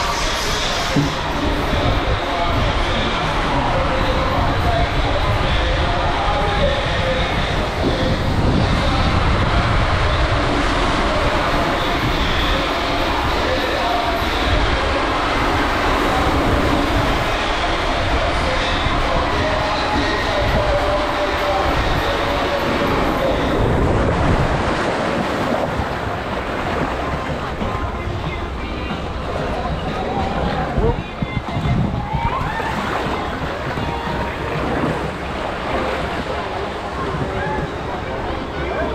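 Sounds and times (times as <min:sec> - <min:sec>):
raft sliding down waterslide tube: 0:00.0 - 0:38.9
rushing water: 0:00.0 - 0:38.9.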